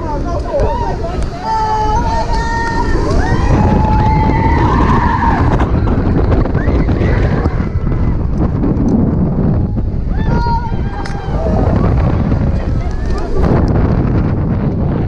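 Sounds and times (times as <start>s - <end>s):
wind rush on microphone: 0.0s - 15.0s
riders screaming: 0.5s - 8.3s, 9.5s - 13.4s.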